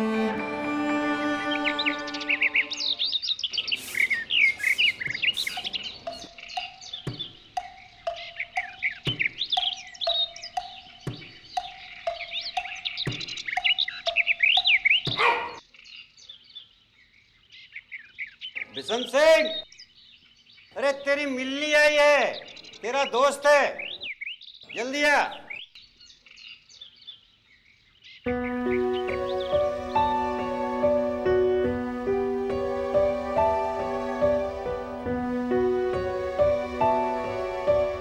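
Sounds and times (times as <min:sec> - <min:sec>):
bowed string music: 0:00.0 - 0:03.2, 0:28.3 - 0:38.0
birds chirping: 0:00.0 - 0:38.0.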